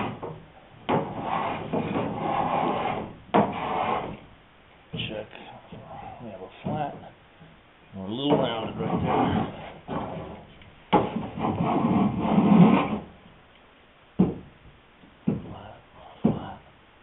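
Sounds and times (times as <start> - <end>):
hand plane shaving wood: 1.0 - 4.2.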